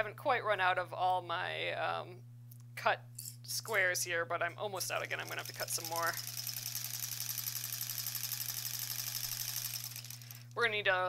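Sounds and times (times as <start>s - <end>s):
electric sewing machine stitching: 4.9s - 10.6s.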